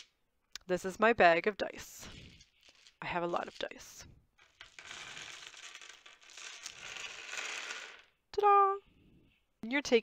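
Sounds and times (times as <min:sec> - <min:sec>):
dice clattering onto table: 0:04.4 - 0:08.2.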